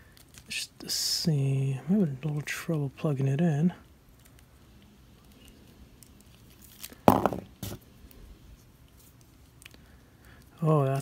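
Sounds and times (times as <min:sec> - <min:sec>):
short knock: 0:07.1 - 0:07.8.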